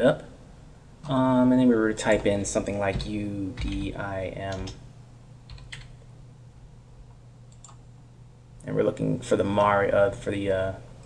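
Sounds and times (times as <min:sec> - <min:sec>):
faint low hum: 0:00.0 - 0:11.0
computer keyboard keystrokes: 0:02.0 - 0:03.9, 0:05.5 - 0:05.9, 0:07.5 - 0:07.8.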